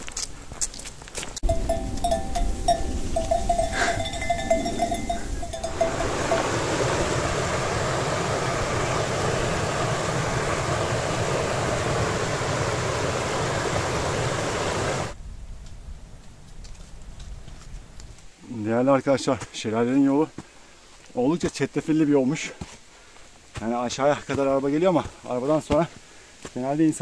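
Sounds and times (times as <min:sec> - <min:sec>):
repeated high notes: 0:01.4 - 0:06.6
low rumble: 0:01.4 - 0:10.8
river water rushing over rocks: 0:01.5 - 0:15.2.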